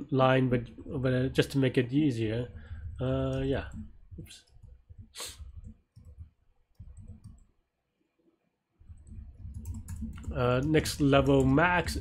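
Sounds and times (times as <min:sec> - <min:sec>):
keyboard and mouse clicks: 0:02.8 - 0:07.5, 0:08.8 - 0:12.0.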